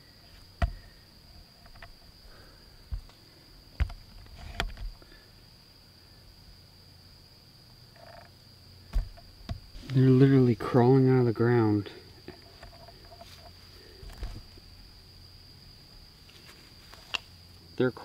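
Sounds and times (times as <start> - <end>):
night insect chorus: 0.0 - 18.0
sharp knocks: 8.9 - 9.6.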